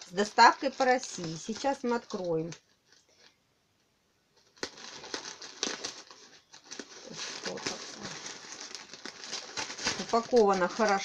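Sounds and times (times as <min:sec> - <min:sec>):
plastic mailer bag crinkling: 0:00.0 - 0:03.4, 0:04.4 - 0:11.0.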